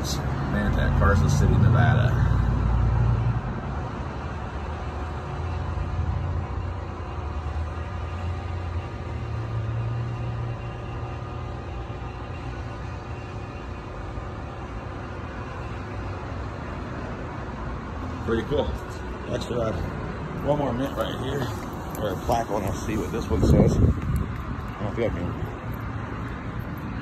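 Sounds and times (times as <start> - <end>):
cars humming by: 0.0 - 27.0
low traffic rumble: 0.0 - 27.0.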